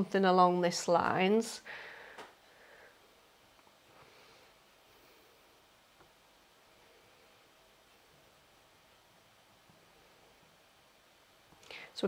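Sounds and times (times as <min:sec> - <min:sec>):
woman speaking: 0:00.0 - 0:01.7.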